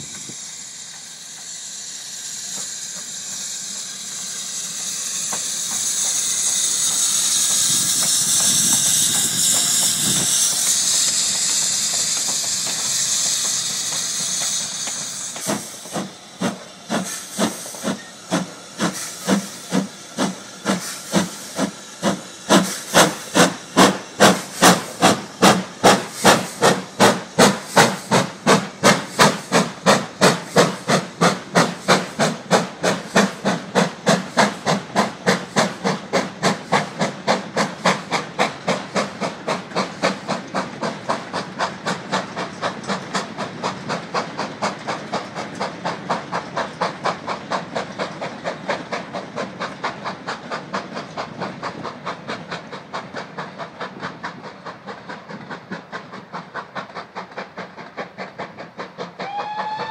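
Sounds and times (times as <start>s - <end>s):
steam hissing: 0.0s - 59.9s
steam locomotive exhaust beats: 0.0s - 59.9s.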